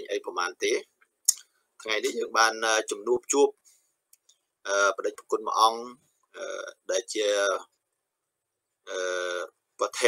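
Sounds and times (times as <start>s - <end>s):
man talking: 0.0s - 3.6s, 4.6s - 7.8s, 8.8s - 10.0s.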